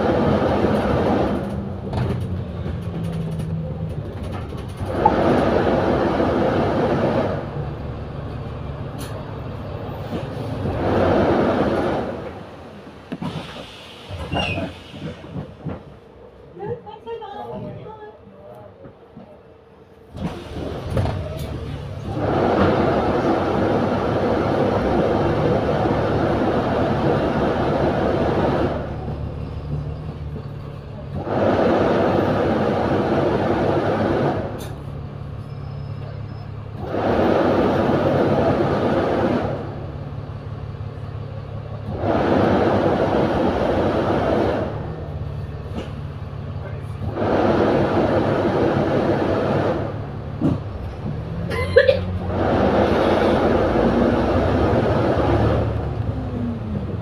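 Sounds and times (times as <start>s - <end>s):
bus engine running: 0.0s - 57.0s
loud rushing noise: 21.7s - 29.0s, 41.9s - 45.0s, 47.0s - 50.3s, 52.2s - 57.0s.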